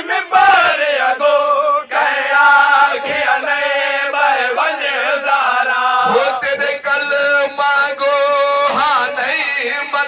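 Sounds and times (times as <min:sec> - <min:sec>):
man chanting a lament: 0:00.0 - 0:10.0.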